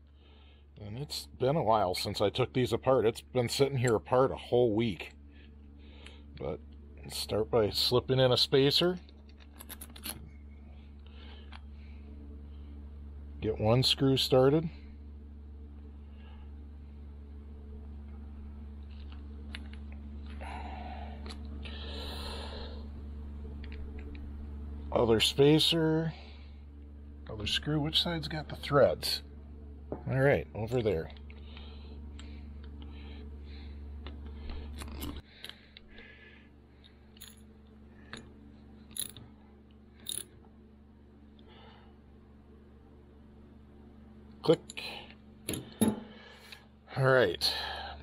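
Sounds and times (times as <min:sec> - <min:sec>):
steady low hum: 0:00.0 - 0:48.0
rustling of parts handled: 0:09.1 - 0:11.7, 0:34.0 - 0:36.0, 0:40.0 - 0:40.4.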